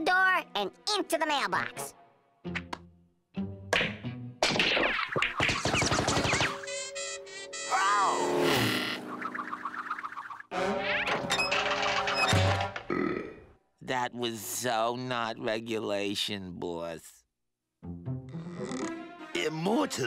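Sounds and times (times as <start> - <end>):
music: 0.0 - 8.6, 10.5 - 12.9, 17.8 - 20.0
cartoon knocks and clatter: 3.8 - 6.6.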